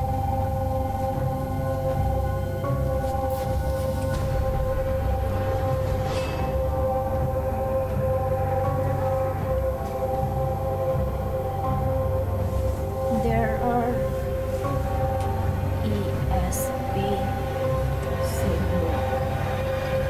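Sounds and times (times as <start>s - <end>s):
long held droning tones: 0.0s - 20.0s
low rumble: 0.0s - 20.0s.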